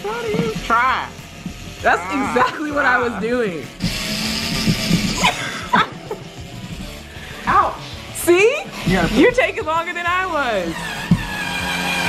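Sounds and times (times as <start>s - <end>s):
cordless screwdriver motor running: 0.0s - 5.3s.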